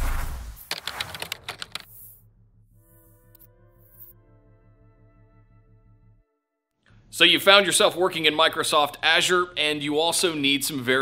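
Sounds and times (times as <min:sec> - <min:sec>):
keyboard typing clicks: 0:00.7 - 0:01.9.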